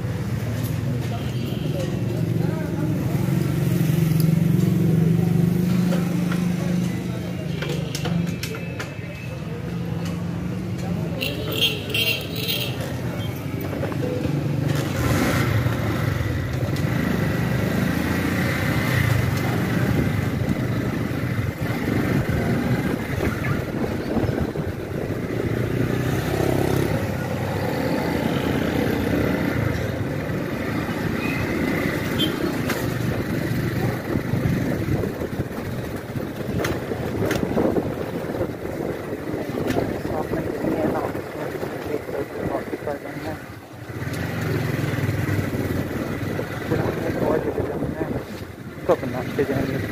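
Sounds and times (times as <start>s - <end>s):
road noise: 0.0s - 49.9s.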